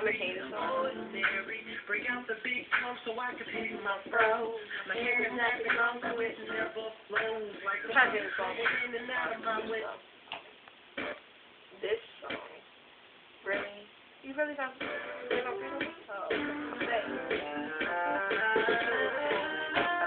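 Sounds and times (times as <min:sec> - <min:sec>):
person singing: 0:00.0 - 0:10.0, 0:14.8 - 0:20.0.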